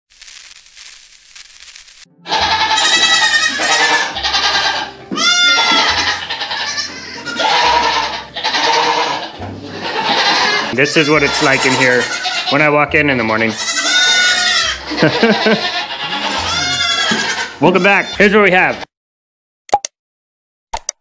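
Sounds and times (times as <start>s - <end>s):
goats bleating: 2.2s - 18.8s.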